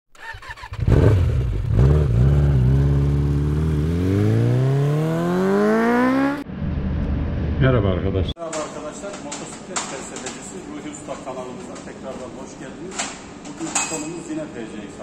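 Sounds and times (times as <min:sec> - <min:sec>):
motorcycle engine revving: 0:00.1 - 0:07.6.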